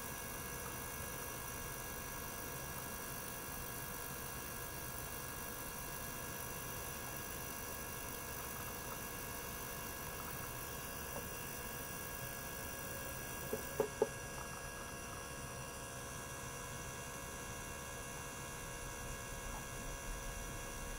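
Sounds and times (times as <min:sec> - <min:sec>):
circulation pump drone and hiss: 0:00.0 - 0:20.9.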